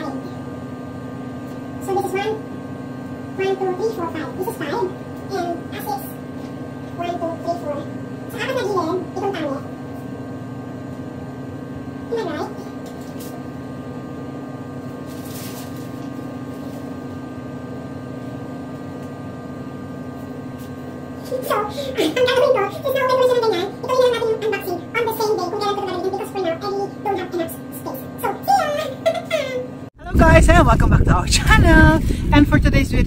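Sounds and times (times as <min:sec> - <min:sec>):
electrical hum: 0:00.0 - 0:33.0
person speaking: 0:21.2 - 0:33.0.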